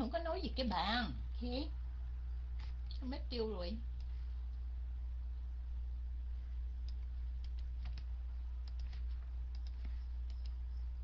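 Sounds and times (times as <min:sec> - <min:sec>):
low electrical hum: 0:00.0 - 0:11.0
computer clicks: 0:06.8 - 0:11.0.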